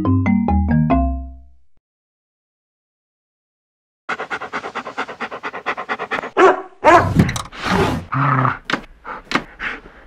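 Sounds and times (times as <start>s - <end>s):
dog panting: 4.1s - 6.6s, 9.0s - 10.0s.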